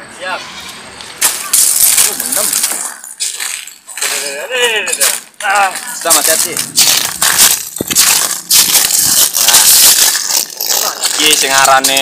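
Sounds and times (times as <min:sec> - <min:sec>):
shells crunching and clattering: 0:01.2 - 0:12.0.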